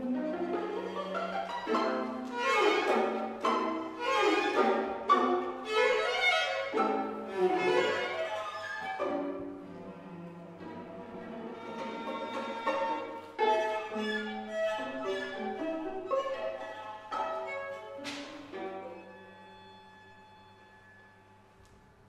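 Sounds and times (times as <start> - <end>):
string quartet playing: 0.0 - 21.5.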